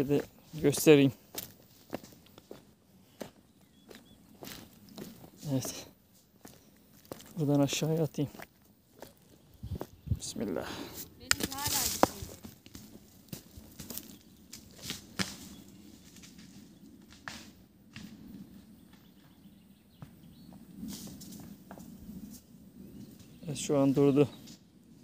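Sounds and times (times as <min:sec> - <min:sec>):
rock clattering down stony slope: 0:11.2 - 0:15.6.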